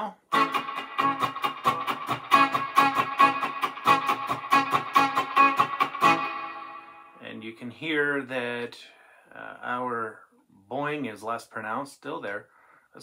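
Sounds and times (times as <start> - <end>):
electric guitar picked rapidly: 0.3 - 7.2.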